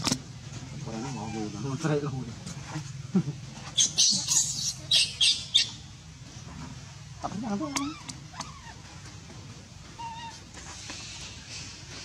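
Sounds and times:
monkey whistle-like cry: 3.8 - 5.7.

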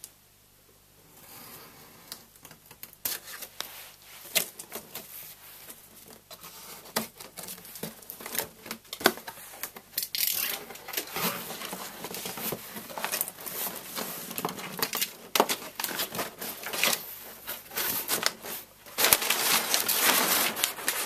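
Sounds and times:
packing paper crinkling: 2.8 - 21.0
cardboard rustling and tearing: 4.2 - 21.0.

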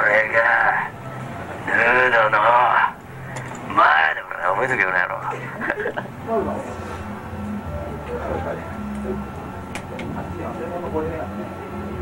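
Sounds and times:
man's voice through megaphone: 0.0 - 0.9, 1.7 - 3.0, 3.7 - 5.4.

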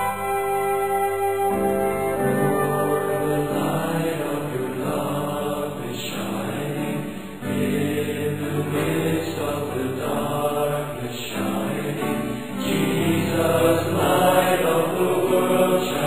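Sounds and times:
slow held chords music: 0.0 - 4.2.

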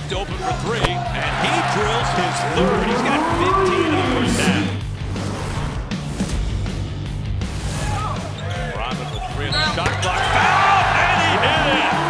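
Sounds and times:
music: 0.0 - 12.0
crowd noise: 0.2 - 4.8, 8.3 - 12.0.

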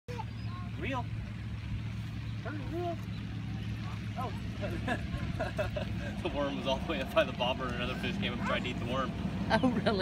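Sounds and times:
low motor hum: 0.1 - 10.0.

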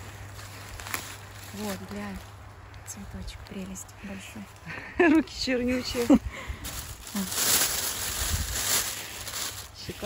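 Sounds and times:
plastic bin bag rustling: 5.8 - 10.0.

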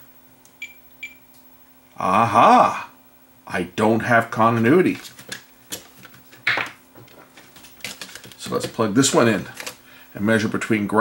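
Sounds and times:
multimeter high beeps: 0.6 - 1.3.

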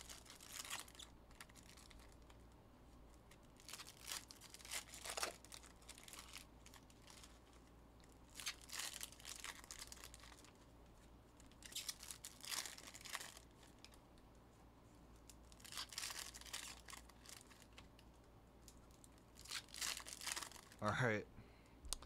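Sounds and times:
cards and packaging rustling: 0.0 - 2.2, 3.3 - 7.5, 8.3 - 10.6, 11.5 - 13.9, 15.6 - 17.9, 19.4 - 20.8.

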